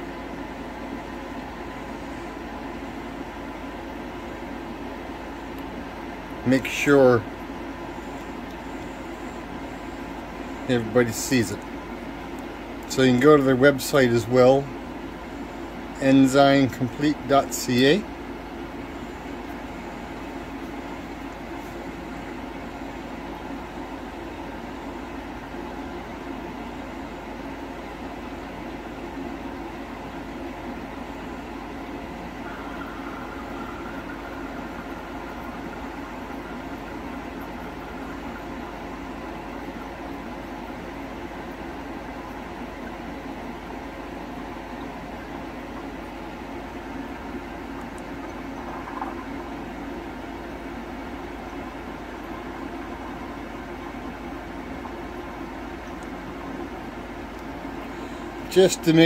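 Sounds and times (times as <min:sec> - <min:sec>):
mechanical hum: 0:00.0 - 0:59.0.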